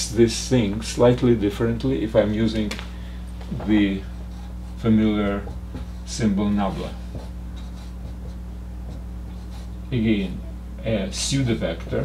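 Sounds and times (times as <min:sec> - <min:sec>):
low electrical hum: 0:00.0 - 0:12.0
marker scratching on whiteboard: 0:03.7 - 0:09.8.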